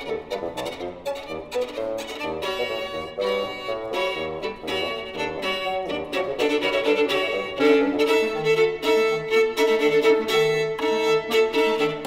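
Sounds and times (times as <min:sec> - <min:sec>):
violin playing fast notes: 0:00.0 - 0:12.0.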